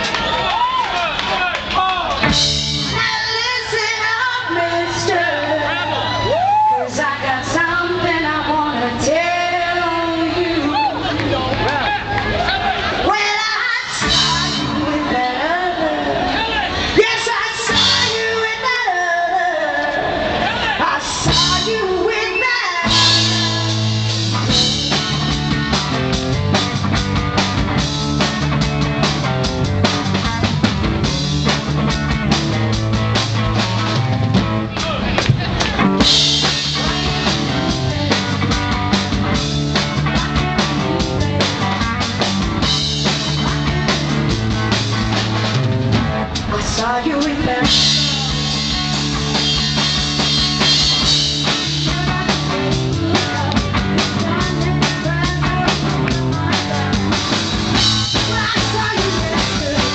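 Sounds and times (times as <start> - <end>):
drum kit: 0.0 - 18.8, 20.4 - 59.9
electric guitar: 2.1 - 59.9.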